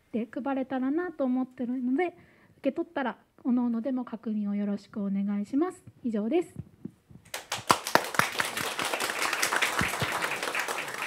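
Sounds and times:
small group applauding: 7.3s - 11.0s.

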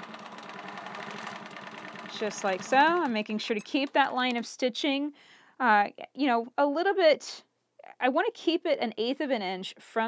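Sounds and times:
quilting machine stitching: 0.0s - 3.8s.

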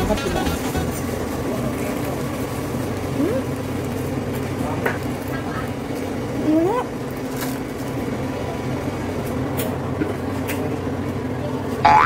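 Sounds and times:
short rising tone: 0.0s - 1.4s
low hum and rumble: 0.0s - 12.0s.

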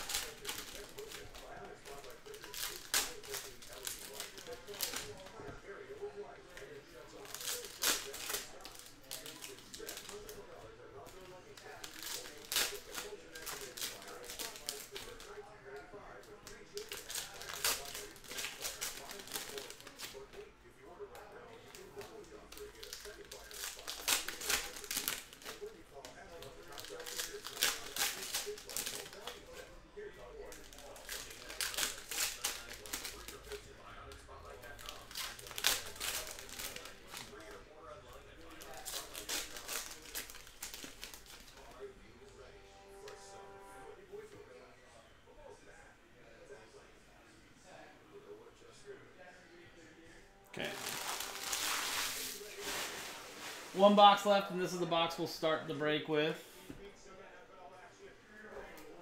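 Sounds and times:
foil packs crinkling and tearing: 0.0s - 5.3s, 6.6s - 20.4s, 21.6s - 29.7s, 30.4s - 41.8s, 50.6s - 54.4s
cards being handled: 50.6s - 54.3s.

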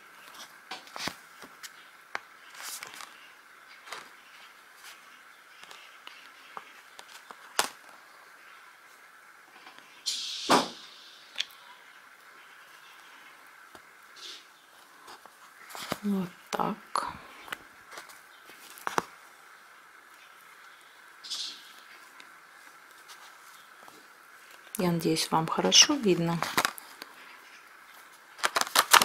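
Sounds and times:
sharp knock: 10.5s - 10.8s
needle clicking through plastic canvas: 28.4s - 29.0s.

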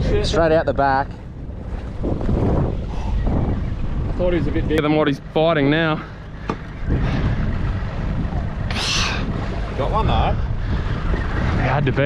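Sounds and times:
outboard motor running: 0.0s - 12.0s
wind and water rushing: 0.0s - 12.0s.

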